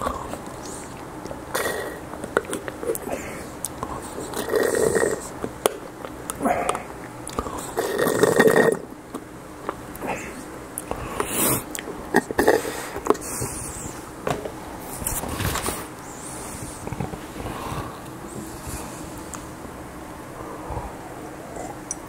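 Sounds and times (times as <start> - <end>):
swallowing and mouth sounds: 0.0 - 14.0
throaty burp-like sound: 1.5 - 2.0, 4.4 - 5.3, 7.8 - 8.9.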